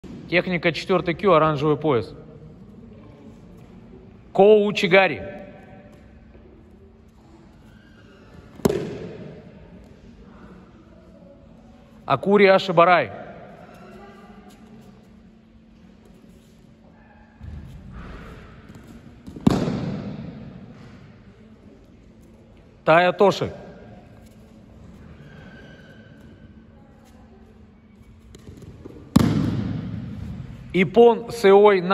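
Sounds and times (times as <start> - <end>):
low steady hum: 0.0 - 31.9.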